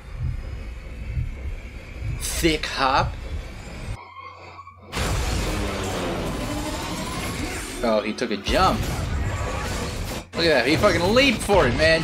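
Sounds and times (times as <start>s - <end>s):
low hum: 0.0s - 7.4s.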